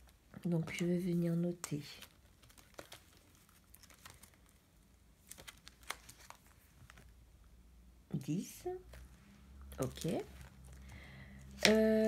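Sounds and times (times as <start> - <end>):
binder pages turning: 0.0 - 7.2, 8.8 - 12.0.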